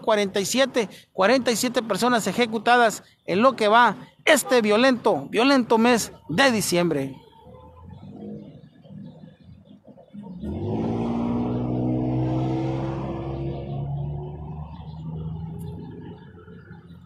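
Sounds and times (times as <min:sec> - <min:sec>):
road vehicle passing: 0:07.1 - 0:17.0.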